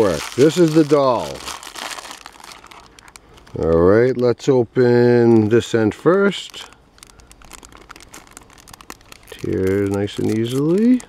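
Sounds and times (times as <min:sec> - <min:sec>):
foil packet crinkling and tearing: 0:00.0 - 0:11.0.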